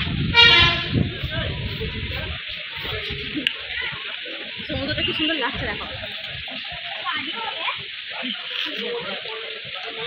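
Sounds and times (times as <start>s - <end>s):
busy street noise: 0.0s - 10.0s
vehicle horn toot: 0.3s - 1.0s.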